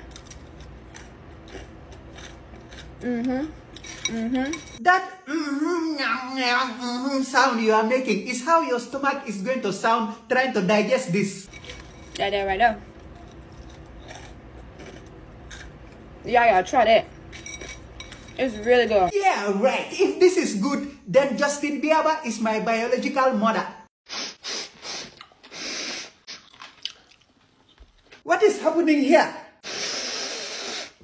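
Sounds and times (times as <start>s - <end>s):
close chewing with crisp crunches: 0.0s - 4.1s, 12.9s - 16.1s, 26.3s - 28.2s.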